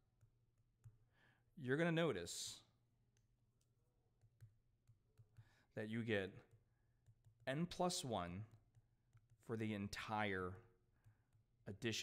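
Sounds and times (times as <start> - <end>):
stylus tapping a tablet screen: 0.0 - 1.4, 2.6 - 12.0.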